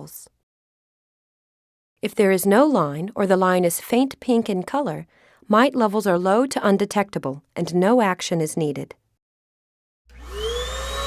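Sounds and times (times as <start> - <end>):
vacuum cleaner motor whine: 10.1 - 11.0.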